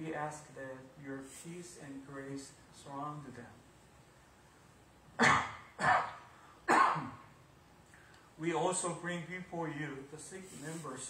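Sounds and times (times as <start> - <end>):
man coughing: 5.2 - 7.3.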